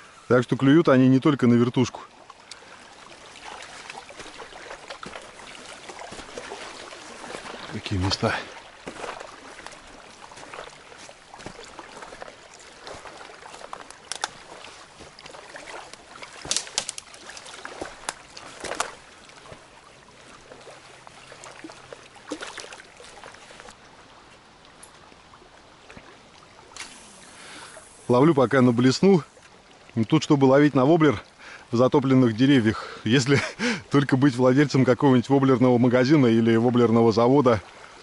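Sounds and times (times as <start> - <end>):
small waves lapping: 0.0 - 38.0
footsteps on sand and twigs: 3.2 - 21.7
twigs snapping: 12.9 - 14.6, 15.7 - 19.0.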